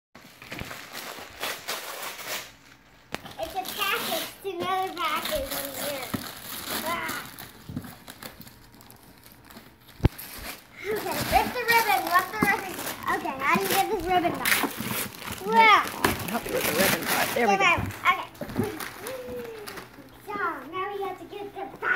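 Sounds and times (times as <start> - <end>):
wrapping paper ripping: 0.2 - 20.3.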